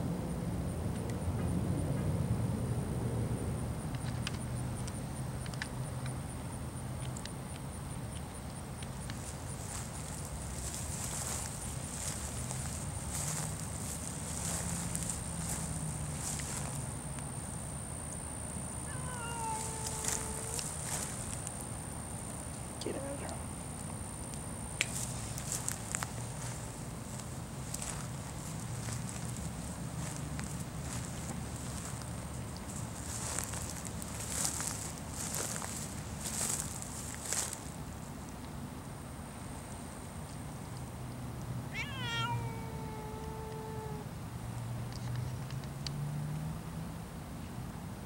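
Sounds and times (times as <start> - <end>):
cat long meow: 18.8 - 20.7, 41.7 - 44.1.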